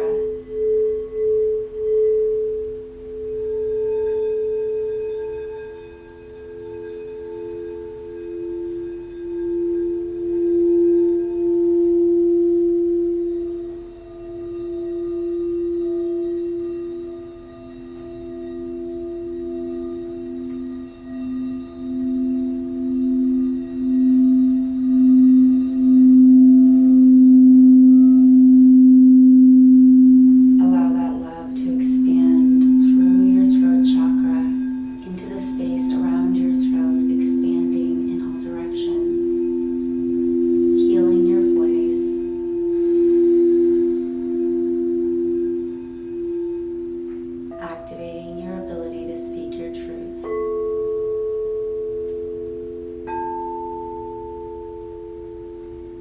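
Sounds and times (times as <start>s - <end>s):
crystal singing bowls ringing: 0.0s - 56.0s.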